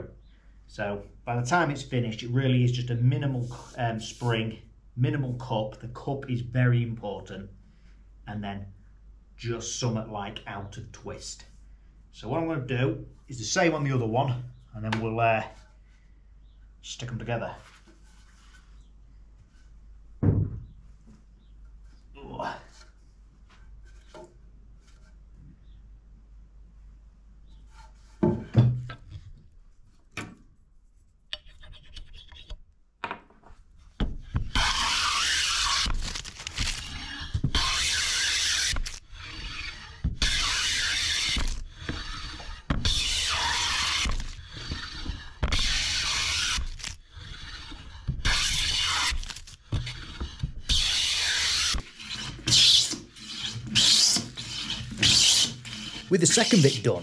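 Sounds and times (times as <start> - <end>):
thump: 20.2 - 20.7
hand plane rasping on wood: 34.5 - 35.9, 36.8 - 56.8.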